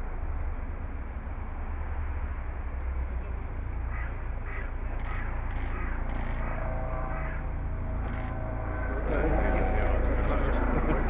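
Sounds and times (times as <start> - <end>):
steady low rumble: 0.0 - 11.0
harsh animal calls: 3.9 - 10.1.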